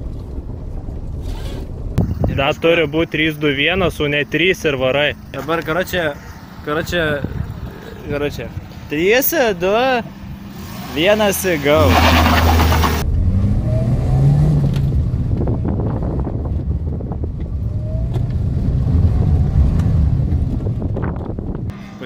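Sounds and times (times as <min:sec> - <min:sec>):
car engine revving: 0:10.0 - 0:15.5.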